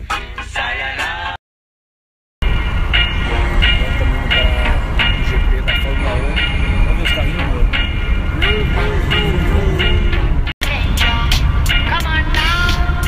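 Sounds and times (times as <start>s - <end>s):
car driving rumble: 2.4s - 13.0s
man talking: 3.2s - 7.8s.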